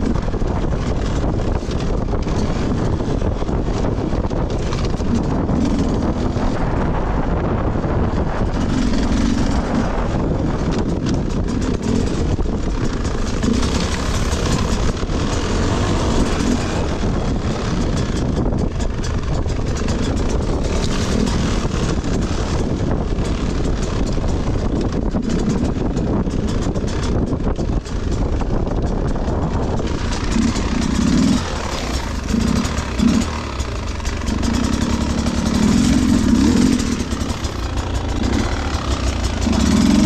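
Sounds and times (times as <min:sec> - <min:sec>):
dirt bike engine revving: 0:00.0 - 0:28.2, 0:29.2 - 0:40.0.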